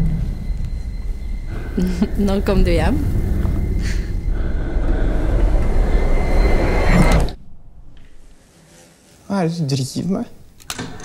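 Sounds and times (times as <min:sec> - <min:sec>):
loud low rumble: 0:00.0 - 0:08.4
thin rising whine: 0:00.0 - 0:08.4.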